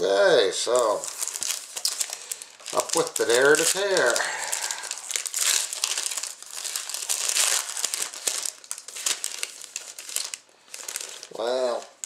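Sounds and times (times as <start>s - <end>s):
card wrapper crinkling and tearing: 0.6s - 12.0s.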